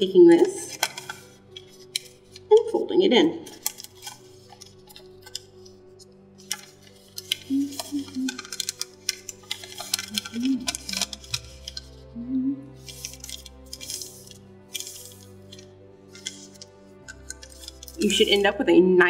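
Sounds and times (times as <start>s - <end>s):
paper crinkling and rustling: 0.0s - 2.8s, 3.4s - 18.5s
soft background music: 0.0s - 19.0s.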